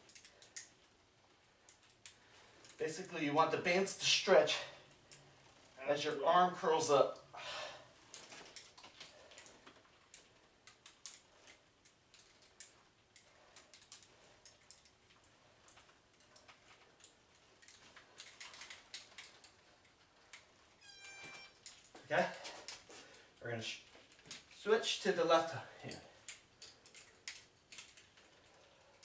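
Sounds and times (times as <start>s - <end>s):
brief squeak: 20.8s - 21.6s.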